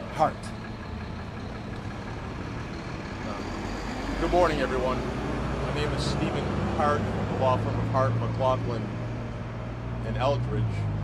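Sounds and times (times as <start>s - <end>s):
city street traffic rumble: 0.0s - 11.0s
engine idling: 0.0s - 11.0s.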